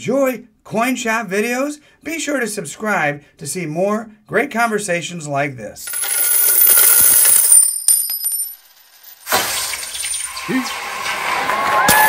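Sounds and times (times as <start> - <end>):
coins pouring and clinking: 5.8 - 10.5.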